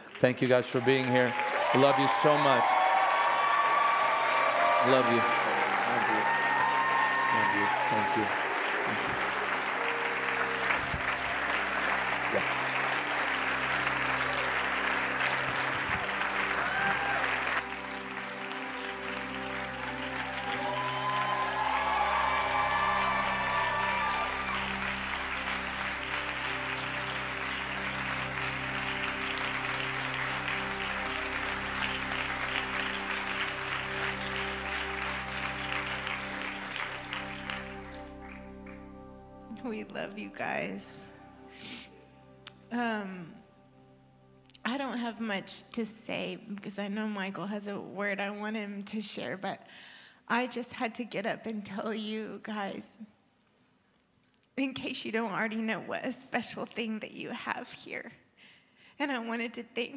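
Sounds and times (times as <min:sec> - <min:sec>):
crowd applauding and cheering: 0:00.0 - 0:41.4
soft music of held chords: 0:00.0 - 0:46.3.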